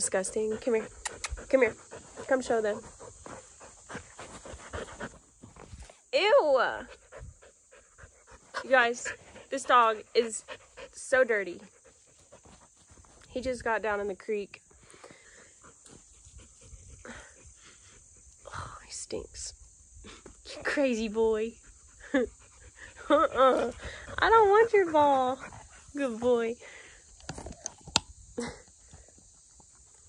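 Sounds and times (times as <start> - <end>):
dog panting: 0.0 - 5.4, 6.8 - 13.2, 15.3 - 18.4, 21.5 - 26.3.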